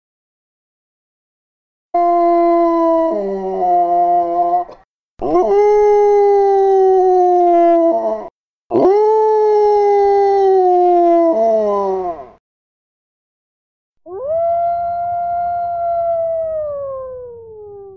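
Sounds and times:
dog howling: 2.0s - 12.4s, 14.1s - 17.9s.

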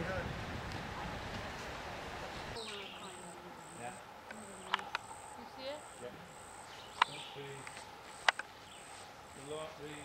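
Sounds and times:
insect buzzing chirp: 2.6s - 10.0s
sharp clicks: 7.0s - 8.5s.

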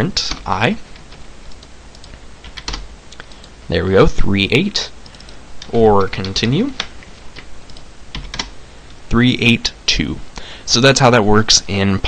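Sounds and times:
keyboard keys tapping: 1.5s - 3.5s, 7.7s - 8.5s.

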